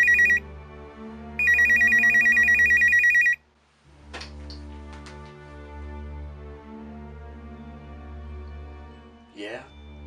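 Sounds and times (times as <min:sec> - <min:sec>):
telephone ringing: 0:00.0 - 0:00.4, 0:01.4 - 0:03.4
soft music: 0:00.0 - 0:10.0.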